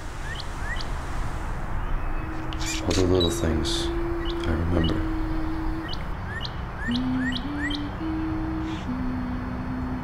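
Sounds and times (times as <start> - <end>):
rising bird chirps: 1.7 - 9.0.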